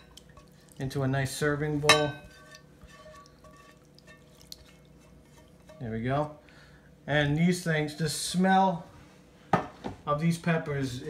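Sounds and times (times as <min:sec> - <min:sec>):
spatula scraping pan: 0:01.6 - 0:06.4.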